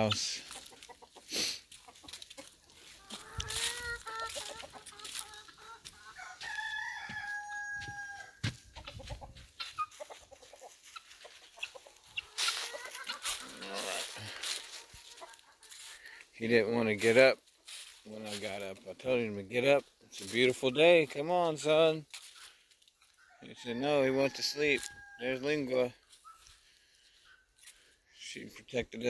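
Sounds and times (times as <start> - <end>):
chickens clucking: 0.0 - 29.0
footsteps on dry leaves: 0.1 - 19.2, 22.0 - 23.3, 24.1 - 28.0
rooster crowing: 6.0 - 8.6.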